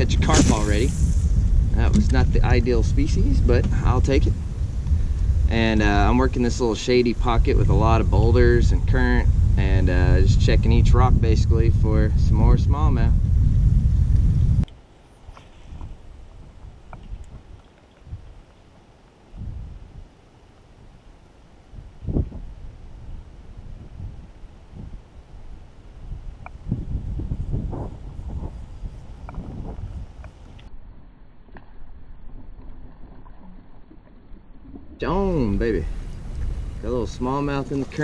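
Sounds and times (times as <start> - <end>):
wind buffeting microphone: 0.0 - 14.7, 15.3 - 18.5, 19.3 - 20.2, 21.7 - 30.7, 35.0 - 38.0
sharp knock: 0.3 - 1.2.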